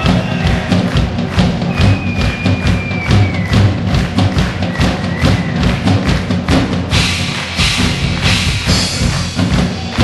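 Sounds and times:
drum thumps and cymbal hits: 0.0 - 10.0
live band playing: 0.0 - 10.0.

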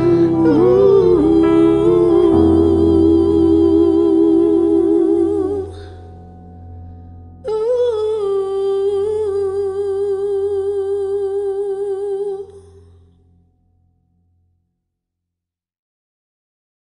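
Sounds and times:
woman singing wordless note with vibrato: 0.0 - 6.1, 7.4 - 12.9.

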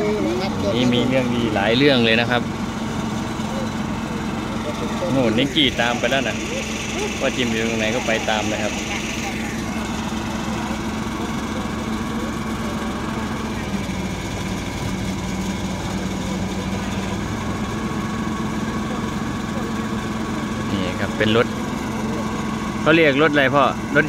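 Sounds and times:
truck engine idling: 0.0 - 24.0.

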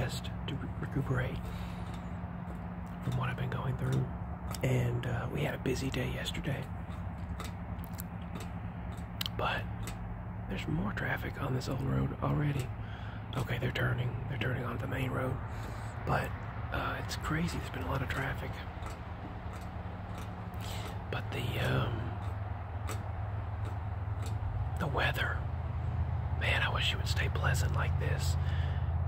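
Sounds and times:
road traffic rumble: 0.0 - 29.0
vehicle engine hum: 0.0 - 29.0
light clicks: 17.1 - 25.3.

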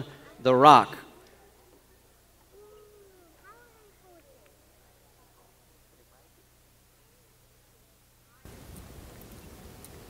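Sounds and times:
faint high-pitched voices: 1.1 - 8.5.

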